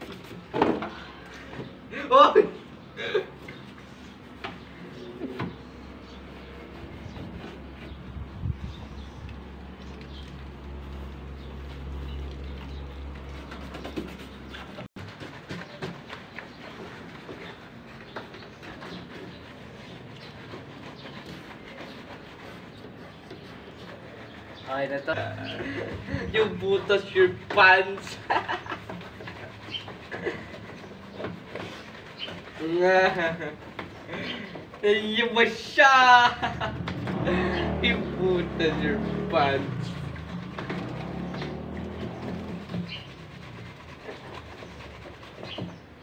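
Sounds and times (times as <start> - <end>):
wet clothes scrubbed by hand: 3.3 - 34.0, 36.4 - 46.0.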